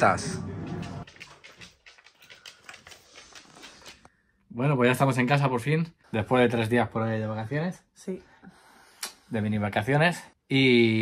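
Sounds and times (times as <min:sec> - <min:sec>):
dog claws clicking on wooden floor: 0:00.6 - 0:04.1.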